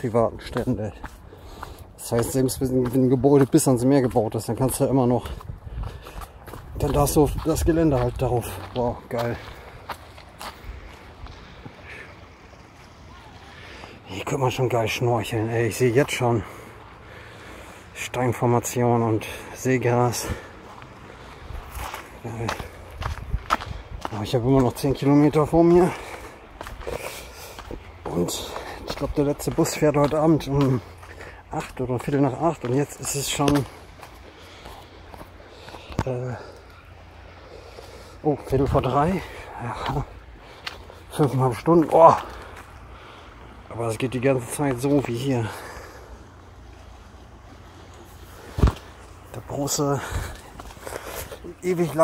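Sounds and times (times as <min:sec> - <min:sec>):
footsteps on dirt path: 0:00.0 - 0:18.2, 0:18.8 - 0:52.0
wind rumble on microphone: 0:05.2 - 0:08.7, 0:22.8 - 0:24.8
wind rumble: 0:21.3 - 0:24.6.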